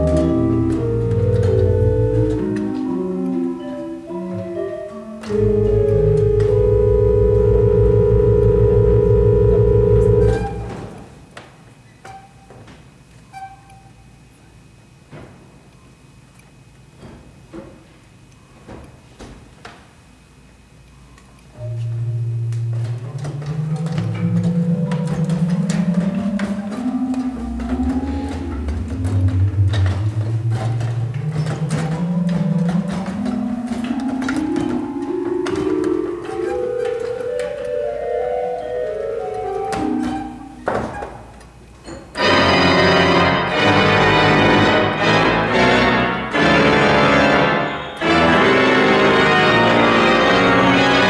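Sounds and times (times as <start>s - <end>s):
pipe organ sustained chord: 0.0s - 11.2s, 21.6s - 40.6s, 42.2s - 51.0s
hall reverberation: 0.0s - 11.3s, 21.6s - 40.6s.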